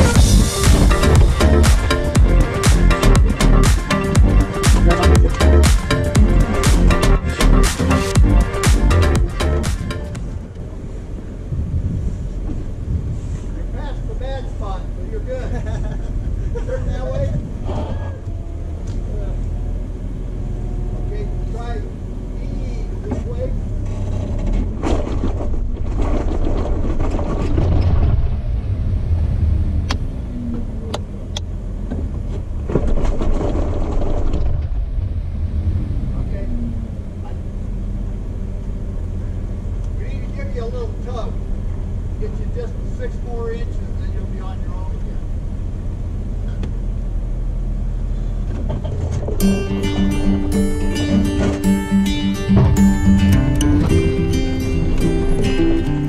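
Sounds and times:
engine crawling over rocks: 0:16.2 - 0:39.1, 0:39.7 - 0:49.4.

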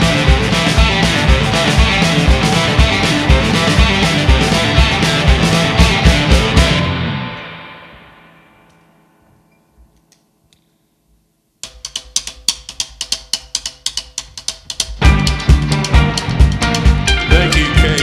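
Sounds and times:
drum sharp ticks: 0:00.0 - 0:06.8, 0:11.6 - 0:18.0
live rock band playing: 0:00.0 - 0:08.2, 0:14.9 - 0:18.0.

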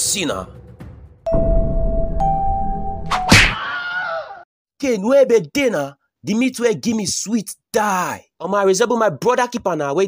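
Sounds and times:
two-note chime: 0:01.3 - 0:03.1.

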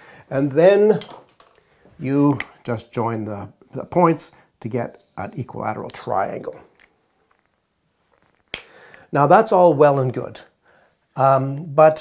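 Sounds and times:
faint soft hiss: 0:00.0 - 0:12.0.

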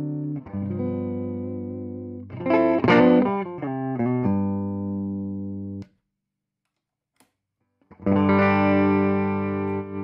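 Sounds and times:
electric guitar chords and notes: 0:00.0 - 0:05.8, 0:07.9 - 0:10.0.

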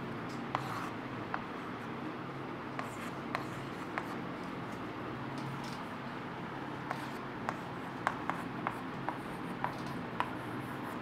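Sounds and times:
steady low hum: 0:00.0 - 0:11.0
chalk scratching on a chalkboard: 0:00.5 - 0:01.0, 0:02.8 - 0:04.2, 0:06.8 - 0:11.0.

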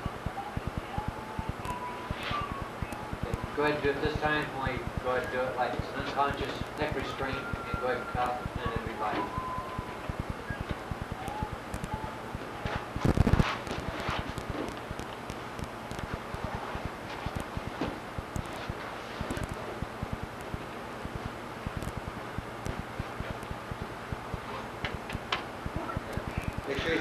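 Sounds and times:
steady hiss with crackle: 0:00.0 - 0:27.0.

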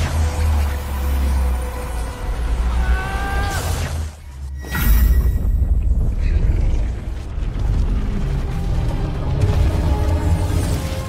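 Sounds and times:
deep rumble: 0:05.3 - 0:10.9.

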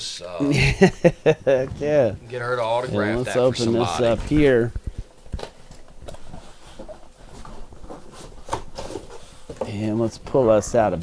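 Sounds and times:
cardboard rustling: 0:03.6 - 0:09.7.

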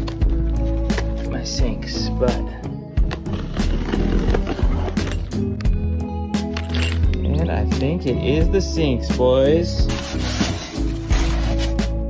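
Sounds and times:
background music with heavy bass: 0:00.0 - 0:12.0.

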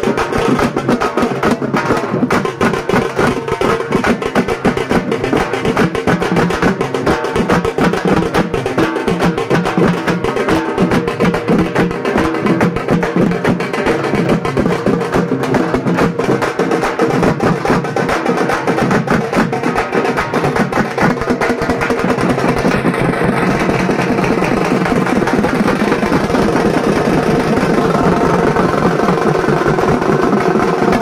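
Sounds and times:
loud fast drumming: 0:00.0 - 0:31.0.

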